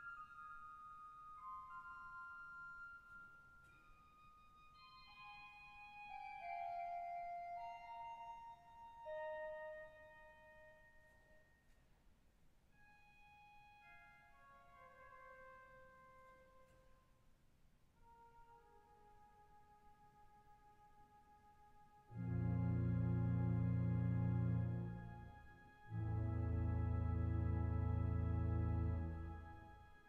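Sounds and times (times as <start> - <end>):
pipe organ playing soft chords: 21.8 - 30.0.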